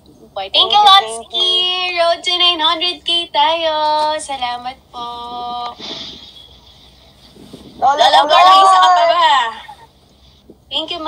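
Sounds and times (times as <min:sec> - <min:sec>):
faint hiss: 0:00.0 - 0:08.2.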